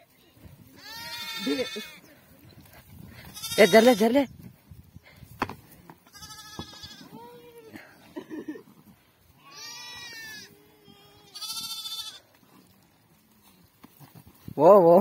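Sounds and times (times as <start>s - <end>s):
sheep and goats bleating: 0.5s - 2.2s, 3.1s - 4.3s, 6.0s - 8.5s, 9.2s - 12.8s.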